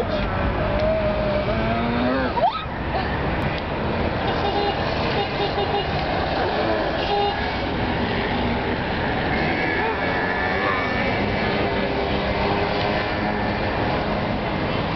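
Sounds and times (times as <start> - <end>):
road traffic passing: 0.0 - 14.9.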